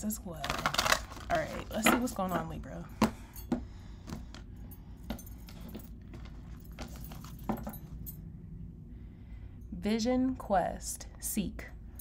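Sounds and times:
faint low hum: 0.0 - 12.0
cards clicking and rattling: 0.4 - 2.1
beaded bracelets clinking: 5.1 - 8.2.

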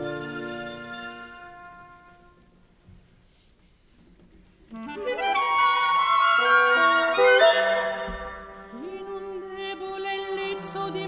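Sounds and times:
orchestral music: 0.0 - 2.4, 4.7 - 11.0.

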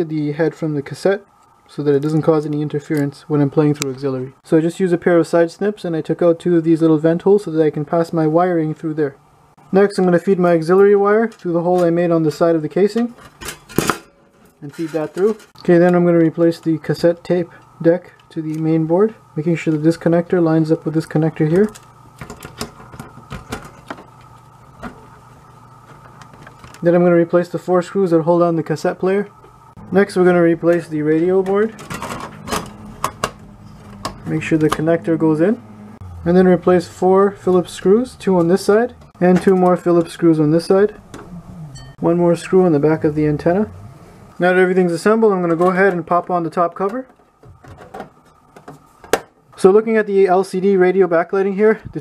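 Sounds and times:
faint steady hum: 0.0 - 52.0.

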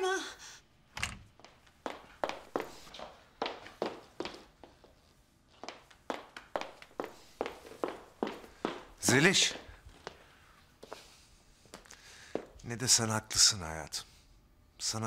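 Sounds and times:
high heels clicking on hard floor: 1.4 - 10.2.

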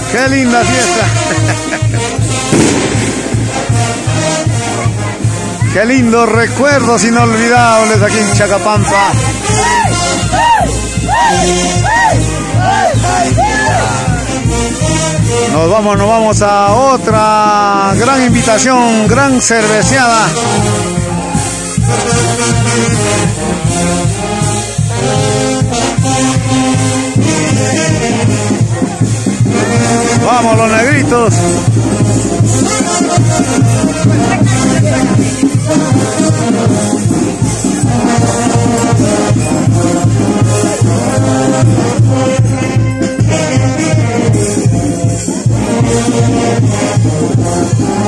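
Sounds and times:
brass band playing dance music: 0.0 - 48.0.

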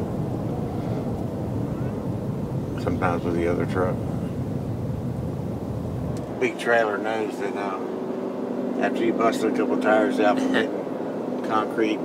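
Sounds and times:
road and wind noise in a vehicle: 0.0 - 12.0.

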